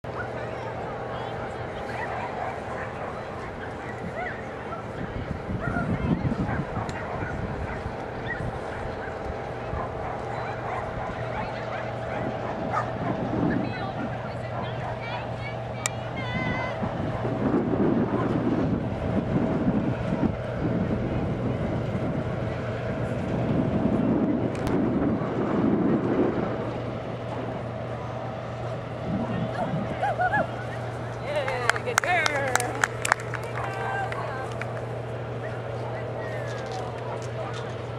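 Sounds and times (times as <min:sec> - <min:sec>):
steady low hum: 0:00.0 - 0:37.9
wind rumbling on microphone: 0:00.0 - 0:37.9.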